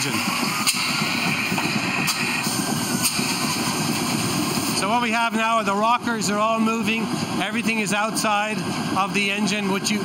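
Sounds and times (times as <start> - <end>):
diesel engine clattering: 0.0 - 10.0.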